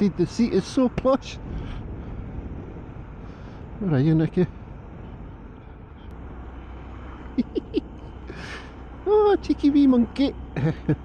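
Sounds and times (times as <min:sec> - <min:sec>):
motorcycle engine drone: 0:00.0 - 0:11.0
wind: 0:00.0 - 0:11.0
person chuckling: 0:07.4 - 0:08.6.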